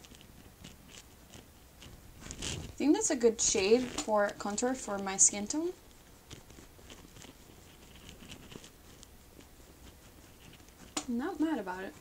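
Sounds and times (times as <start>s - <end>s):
brush scratching on skin: 0.0s - 12.0s.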